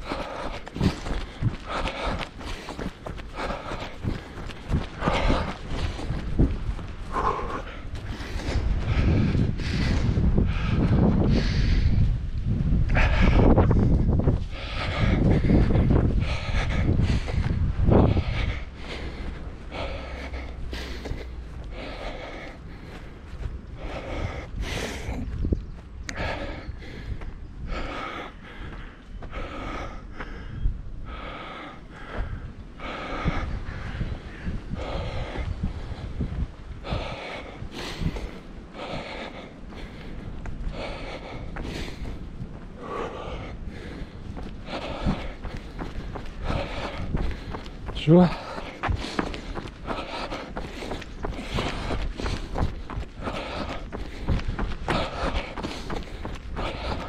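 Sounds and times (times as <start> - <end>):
footsteps on grass and dirt: 0.0 - 11.0, 13.6 - 30.4, 33.7 - 57.0
runner breathing hard: 0.0 - 57.0
wind rumble on microphone: 0.0 - 57.0.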